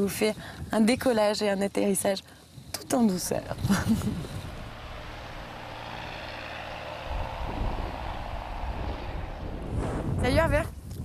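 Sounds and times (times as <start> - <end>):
distant propeller aircraft engine drone: 3.1 - 10.5
low rumble: 3.2 - 10.8.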